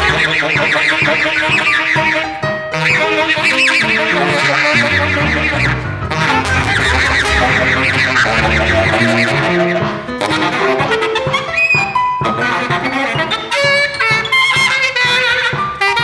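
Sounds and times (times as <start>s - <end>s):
jazz ensemble playing: 2.2s - 11.5s
double bass notes: 4.8s - 9.8s.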